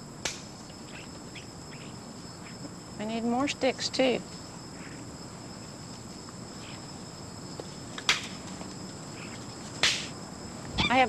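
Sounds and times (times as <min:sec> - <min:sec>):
insects chirring: 0:00.0 - 0:11.0
sharp snaps: 0:00.2 - 0:00.6, 0:08.0 - 0:08.4, 0:09.8 - 0:10.2.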